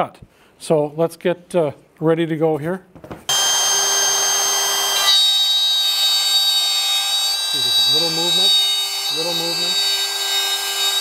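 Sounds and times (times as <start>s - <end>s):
router cutting wood: 3.3s - 11.0s.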